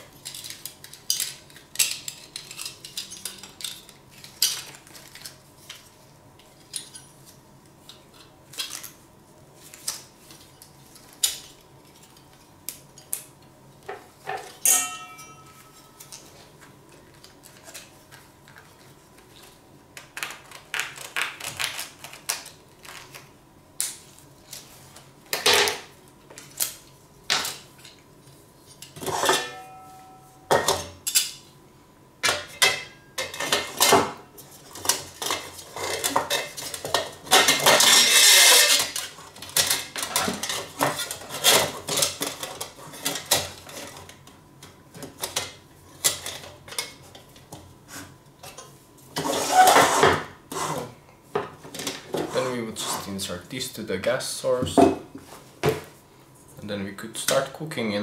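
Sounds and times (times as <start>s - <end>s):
short metallic ring: 14.6s - 16.0s, 29.3s - 30.6s.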